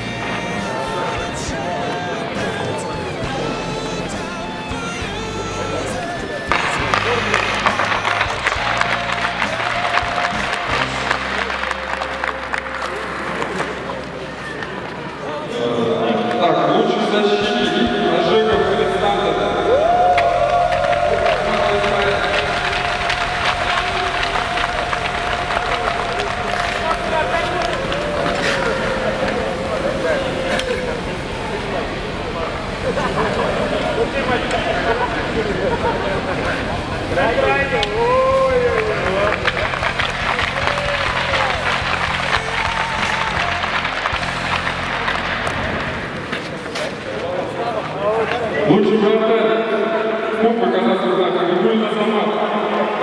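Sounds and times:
background music: 0.0 - 46.7
voices: 0.0 - 53.0
applause: 6.5 - 14.1, 19.8 - 31.1, 37.8 - 46.0.

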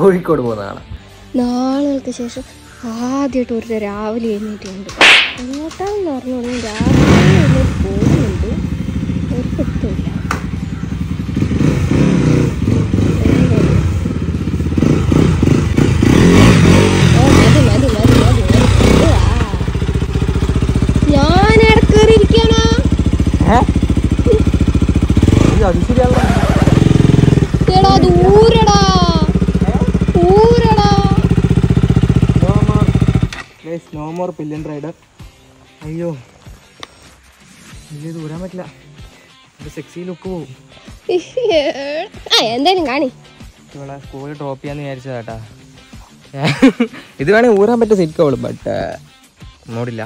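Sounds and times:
motorcycle engine revving: 4.9 - 33.6.

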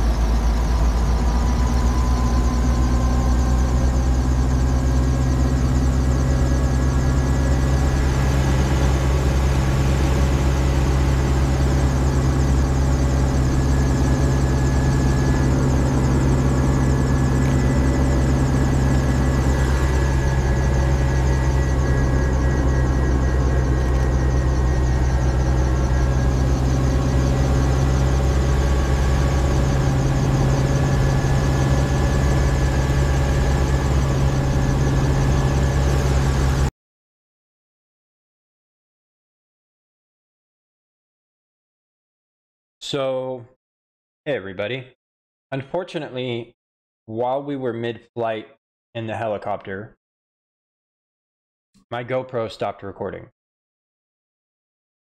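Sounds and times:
helicopter engine and rotor running: 0.0 - 36.7.

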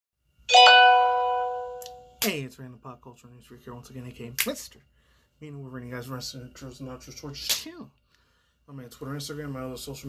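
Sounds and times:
bell-like chime ringing: 0.5 - 2.2.

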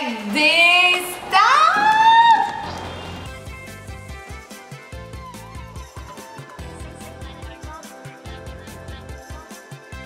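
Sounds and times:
woman squealing: 1.4 - 2.8
music with steady beat: 2.8 - 10.0.

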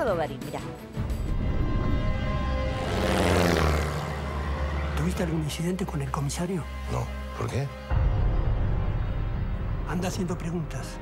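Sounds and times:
propeller plane passing low: 1.5 - 5.0.

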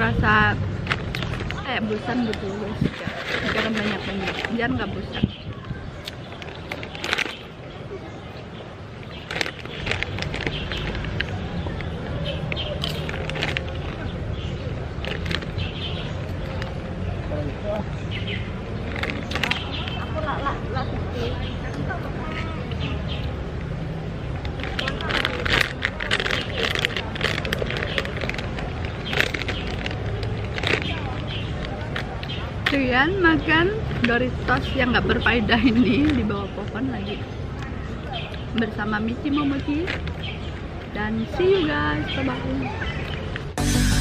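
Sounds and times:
foil chip bag crinkling: 9.2 - 11.4, 24.4 - 32.2.

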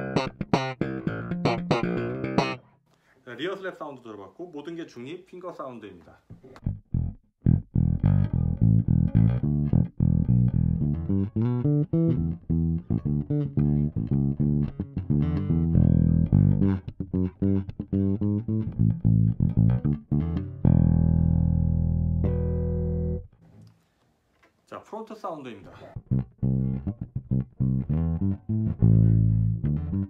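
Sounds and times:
bass guitar plucked notes: 0.0 - 2.7, 6.6 - 23.4, 26.0 - 30.0.

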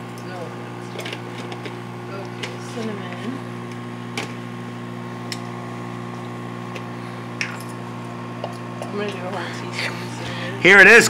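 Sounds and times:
microwave oven humming: 0.0 - 11.0.

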